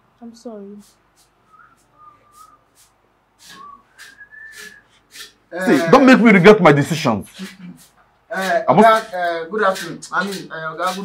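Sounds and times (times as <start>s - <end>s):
broom swishes: 0.6s - 5.8s
man softly whistling: 1.5s - 5.0s.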